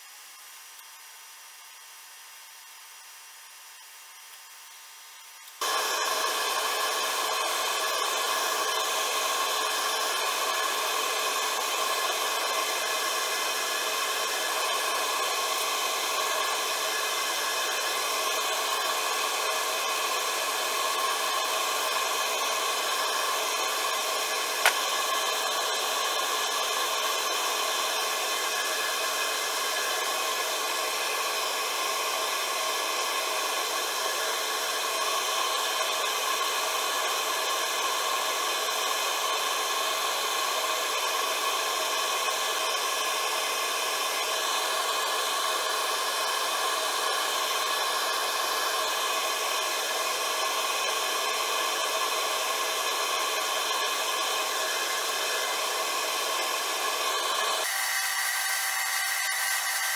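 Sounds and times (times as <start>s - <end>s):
hand sanding spinning piece: 5.5s - 59.9s
wood lathe motor whine: 5.6s - 59.9s
sharp click: 24.6s - 24.9s.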